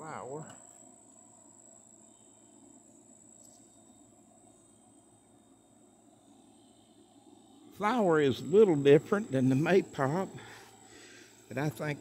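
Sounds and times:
high-pitched insect chorus: 0.0s - 12.0s.

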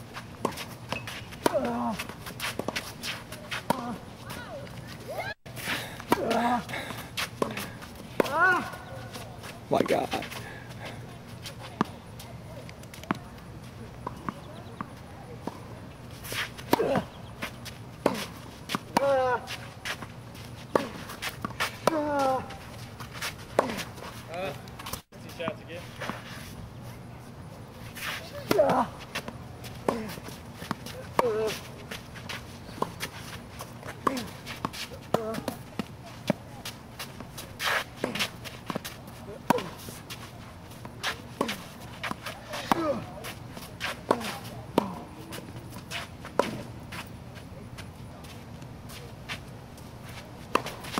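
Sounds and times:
racket hitting tennis ball: 0.2s - 4.7s, 5.5s - 10.9s, 16.2s - 25.0s, 27.9s - 47.1s, 48.9s - 50.9s
tennis ball bouncing: 6.0s - 11.0s, 16.3s - 22.5s, 28.4s - 47.1s, 50.4s - 50.9s
tennis ball struck by racket: 41.0s - 43.1s.

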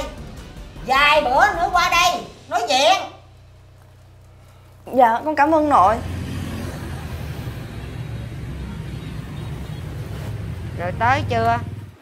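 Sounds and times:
road traffic rumble: 2.3s - 12.0s.

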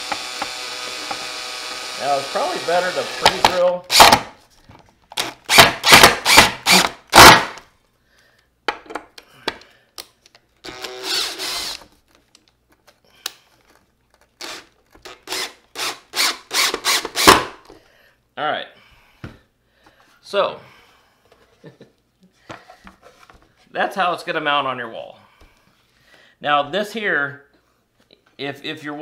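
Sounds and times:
cordless drill driving screws: 0.0s - 4.3s, 5.2s - 7.6s, 10.6s - 11.9s, 14.4s - 17.5s.

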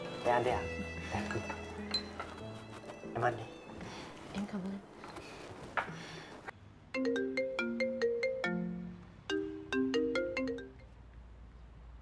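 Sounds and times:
phone ringtone marimba melody: 7.0s - 10.8s.

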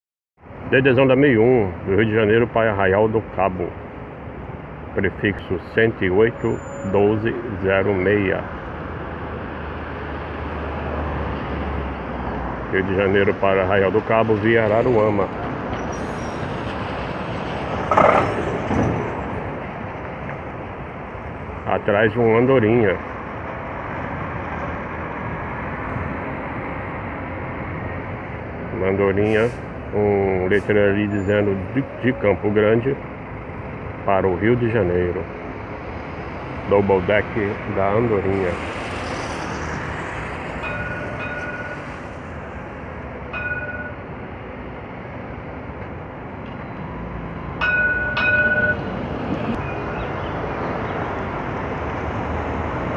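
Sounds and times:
truck passing by: 3.4s - 52.9s.

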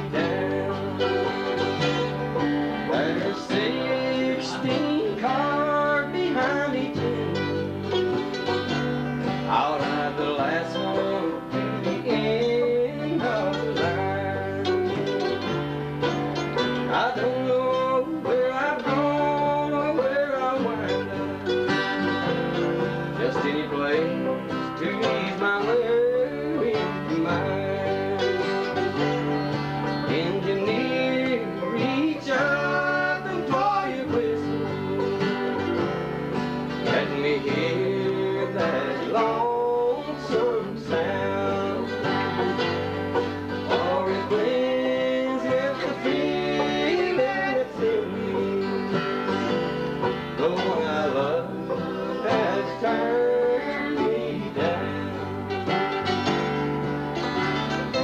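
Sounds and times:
banjo picking: 0.0s - 58.0s
guitar playing: 0.0s - 58.0s.

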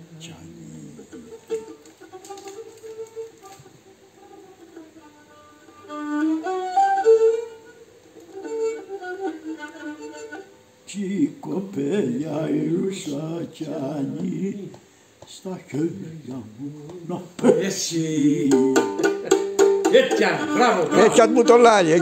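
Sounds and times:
bowed lyra melody: 0.6s - 13.4s, 17.5s - 22.0s.

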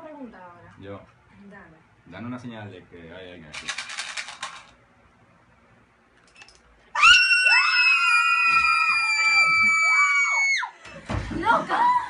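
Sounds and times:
young people screaming in fright: 7.0s - 10.8s.

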